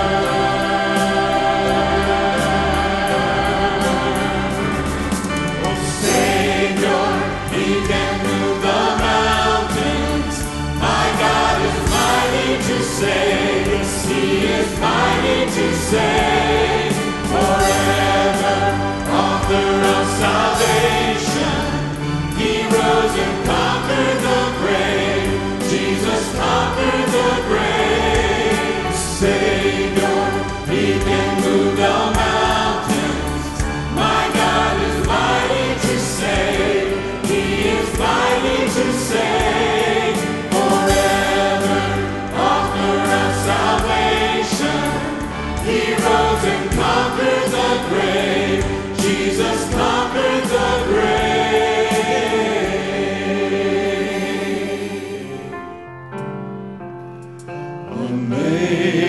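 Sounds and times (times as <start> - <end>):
group singing gospel in harmony: 0.0 - 55.8, 57.9 - 59.0
live instrumental backing: 0.0 - 59.0.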